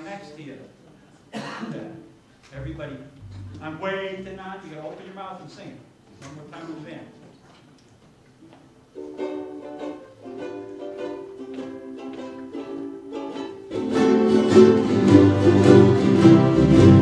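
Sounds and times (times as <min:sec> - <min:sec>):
ukulele band playing: 0:02.6 - 0:05.0, 0:08.7 - 0:17.0.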